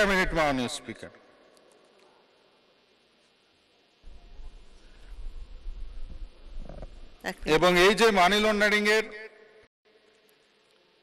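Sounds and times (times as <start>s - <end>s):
low microphone rumble: 4.1s - 7.2s.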